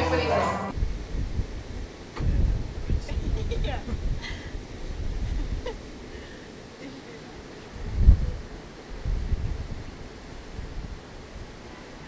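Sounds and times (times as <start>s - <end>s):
wind buffeting microphone: 0.7s - 12.0s.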